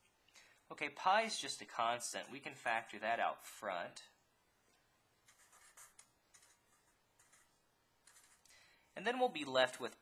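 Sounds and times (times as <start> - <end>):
marker strokes on paper: 5.3 - 8.4.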